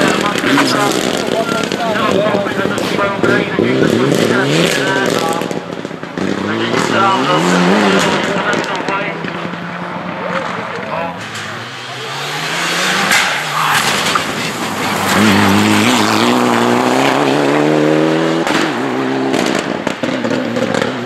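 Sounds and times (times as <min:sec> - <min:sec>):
rally car engine revving: 0:00.0 - 0:21.0.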